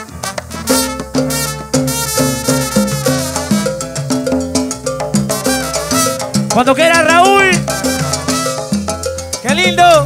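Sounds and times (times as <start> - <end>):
salsa band playing: 0.0 - 10.0
steady percussion: 0.0 - 10.0.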